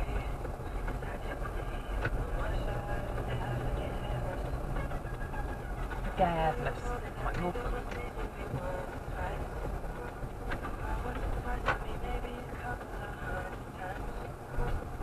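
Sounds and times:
engine and road rumble: 0.0s - 15.0s.

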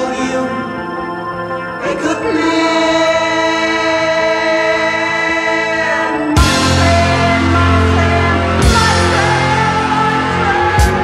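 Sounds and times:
choir-like voices: 0.0s - 11.0s
progressive rock music: 0.0s - 11.0s.

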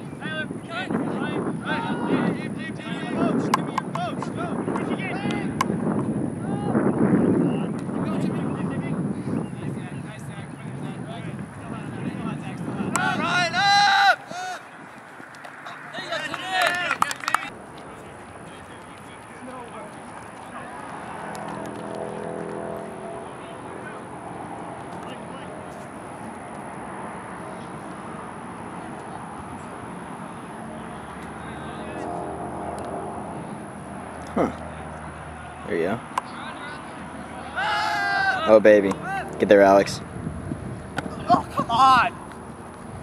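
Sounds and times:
distant calls and chatter: 0.0s - 43.0s
high shouts: 12.7s - 17.5s, 36.3s - 39.4s, 41.1s - 42.2s.

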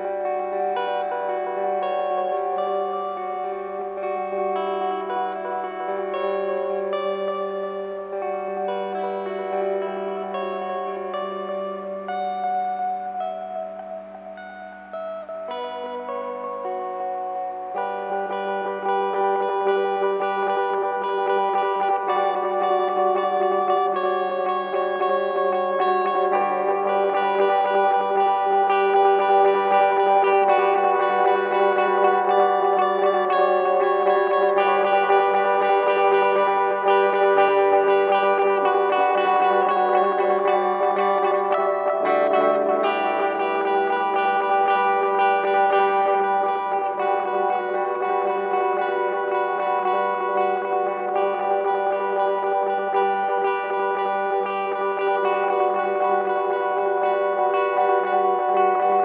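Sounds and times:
guitar with echo effects: 0.0s - 59.0s.

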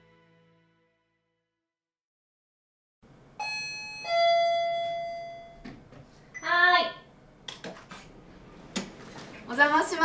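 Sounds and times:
two-note electronic doorbell chime: 3.4s - 5.7s.

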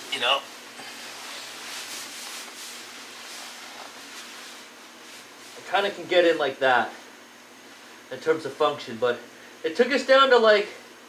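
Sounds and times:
sleeping bag fabric rustling: 1.0s - 5.4s.

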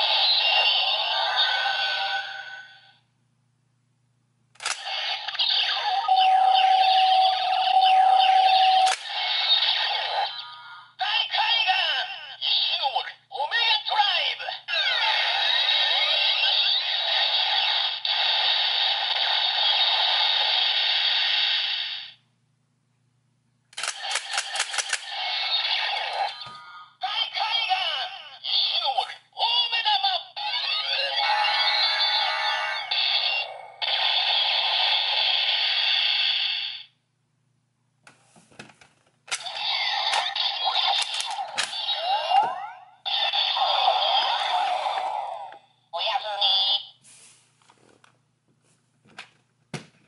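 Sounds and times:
toy electronic music and effects: 0.0s - 2.9s, 4.8s - 12.9s, 14.8s - 18.3s, 25.0s - 36.9s, 39.4s - 46.9s.

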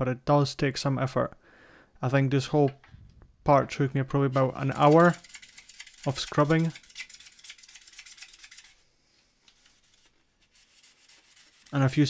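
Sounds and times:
foam eraser scrubbing plastic: 9.5s - 12.0s.

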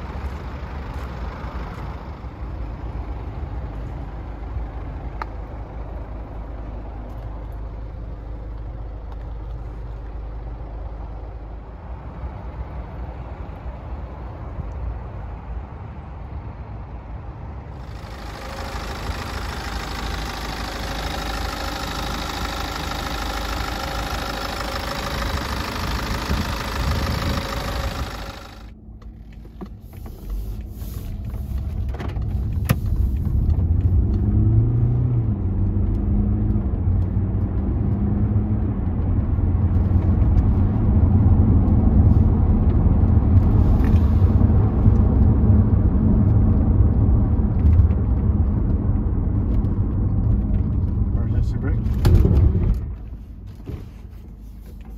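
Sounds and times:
car engine rumble accelerating: 0.0s - 54.9s
diesel engine running: 0.0s - 54.9s.

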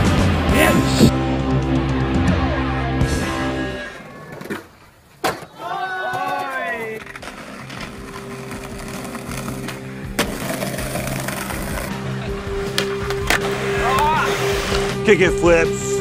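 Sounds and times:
skateboard wheels rolling on bricks: 3.9s - 15.0s
skateboard clacks: 4.3s - 14.9s.

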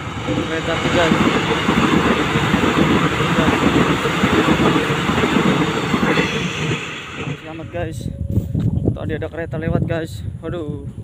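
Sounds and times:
train passing at speed: 0.0s - 8.3s.

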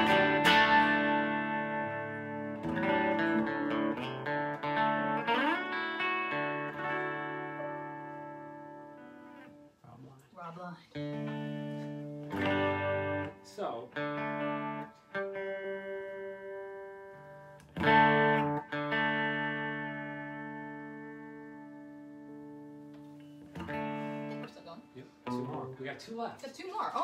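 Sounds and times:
electric guitar chords: 0.0s - 9.8s, 10.9s - 25.8s.

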